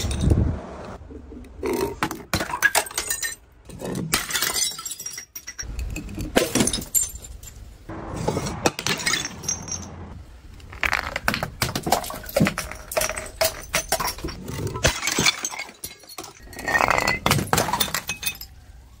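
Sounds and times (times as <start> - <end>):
glass bottles smashing on stone: 2.0 - 7.6, 8.6 - 10.0, 10.8 - 18.6
glass shards tinkling: 12.0 - 18.6.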